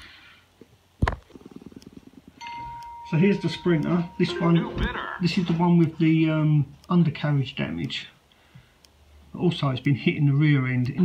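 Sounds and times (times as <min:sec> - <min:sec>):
rattle of low ticks: 0:00.0 - 0:04.6
steady electronic beep tone: 0:02.4 - 0:05.3.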